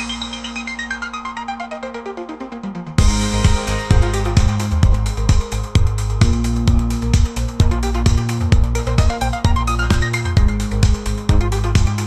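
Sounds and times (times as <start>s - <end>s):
held low synth note: 0.0s - 11.6s
descending run of synth notes: 0.0s - 12.0s.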